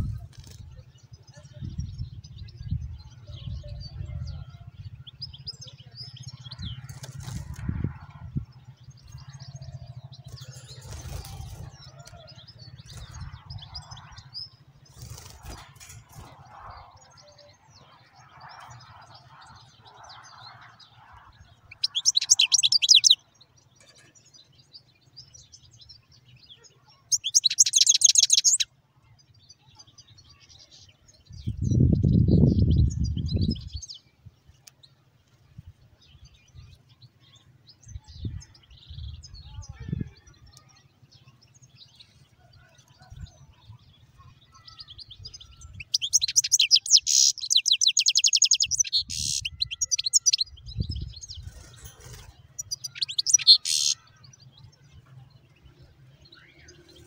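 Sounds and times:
finches trilling: 21.7 - 23.2, 27.1 - 28.6, 45.4 - 54.1.

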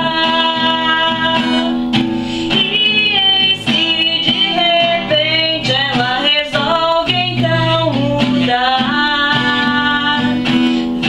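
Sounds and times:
strummed acoustic guitar: 0.0 - 11.0
woman singing: 0.0 - 11.0.

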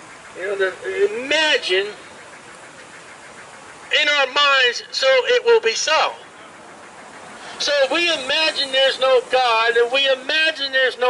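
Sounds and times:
outdoor background hiss: 0.0 - 11.0
man speaking: 0.4 - 2.0, 3.9 - 6.6, 7.5 - 11.0.

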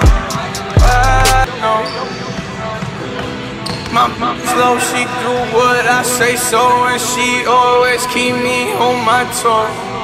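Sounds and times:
hip hop music: 0.0 - 10.0.

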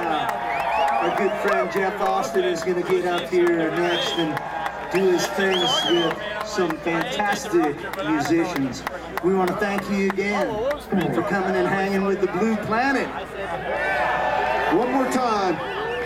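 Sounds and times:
crowd whooping: 0.0 - 7.6, 13.4 - 16.0
crowd talking and calling out: 0.0 - 16.0.

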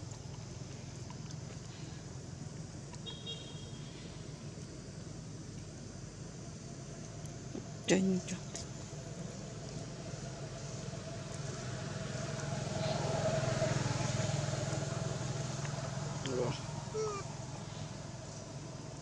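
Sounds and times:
vehicle engine running: 7.4 - 19.0.

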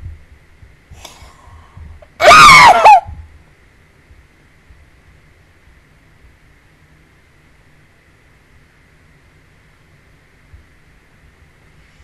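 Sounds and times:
faint breath: 0.9 - 2.1
woman's high-pitched squeal: 2.2 - 3.1.

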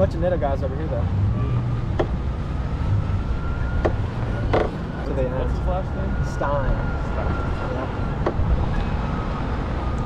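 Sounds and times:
vehicle engine and tyres rumbling: 0.0 - 10.0.

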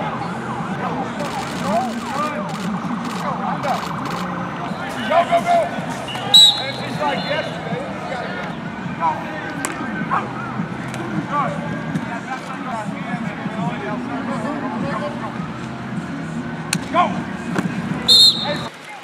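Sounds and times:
players and coaches shouting: 4.6 - 11.7, 18.1 - 19.0
high-pitched call: 6.1 - 7.5.

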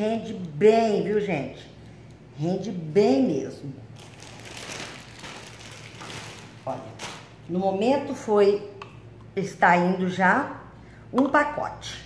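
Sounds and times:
plastic bread bag rustling: 3.9 - 7.8.

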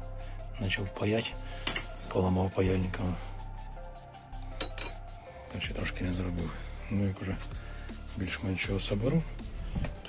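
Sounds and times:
small metal parts clinking: 1.7 - 2.0.

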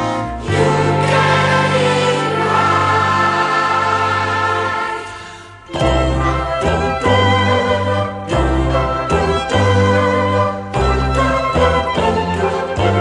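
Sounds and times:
choir singing held chords: 0.0 - 13.0.

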